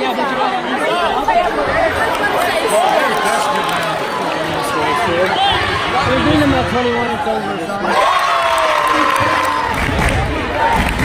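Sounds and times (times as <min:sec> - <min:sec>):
crowd chatter in a gym: 0:00.0 - 0:11.0.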